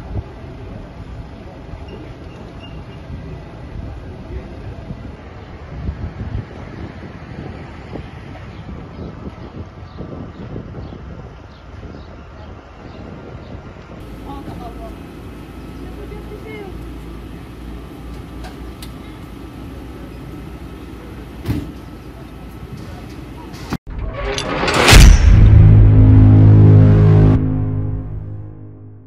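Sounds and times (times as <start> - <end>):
low rumble: 23.9 - 29.0
rising whoosh to loud hit: 23.9 - 29.0
sustained low synthesizer chord: 24.8 - 29.0.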